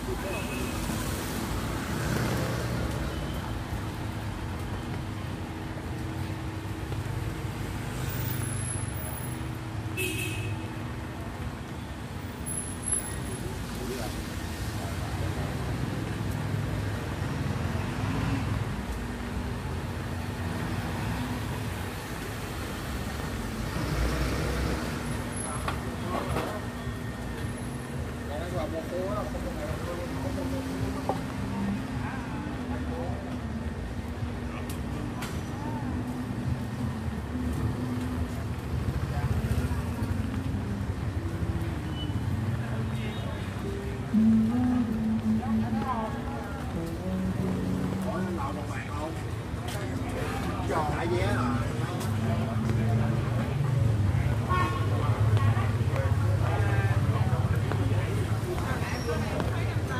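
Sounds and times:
motorbike and car engines passing: 0:00.0 - 0:09.8, 0:13.1 - 0:59.9
people's voices: 0:11.2 - 0:59.9.

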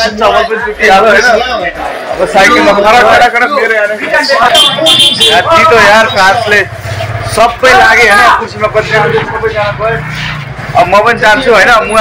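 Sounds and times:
young man speaking loudly: 0:00.0 - 0:10.1.

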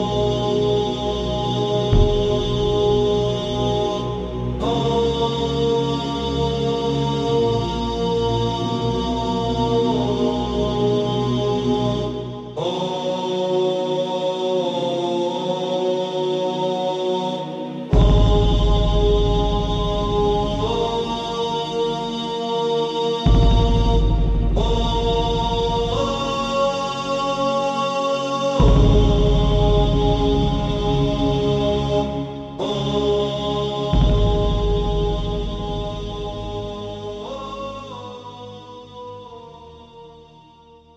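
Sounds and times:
deep bass drone: 0:01.2 - 0:05.2, 0:18.0 - 0:21.4, 0:23.3 - 0:27.0, 0:28.6 - 0:37.4.

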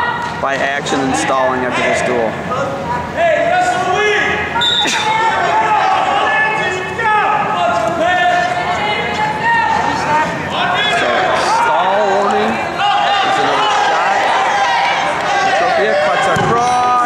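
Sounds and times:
coaches and spectators shouting: 0:00.0 - 0:17.0.

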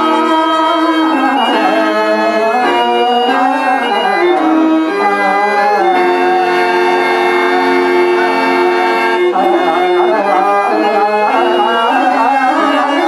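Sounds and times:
harmonium chords and melody: 0:00.0 - 0:13.0.

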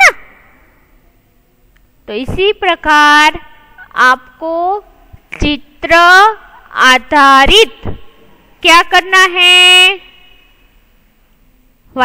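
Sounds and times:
faint room hiss: 0:00.0 - 0:12.0
woman speaking: 0:02.0 - 0:10.4.

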